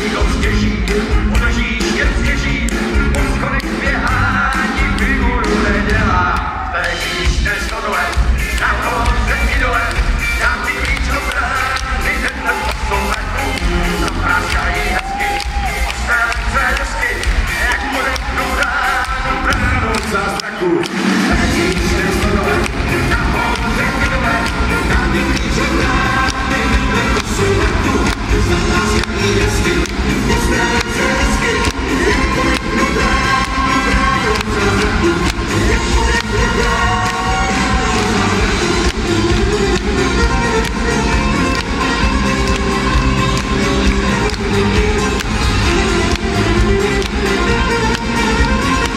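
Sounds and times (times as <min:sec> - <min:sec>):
live band amplified music: 0:00.0 - 0:48.9.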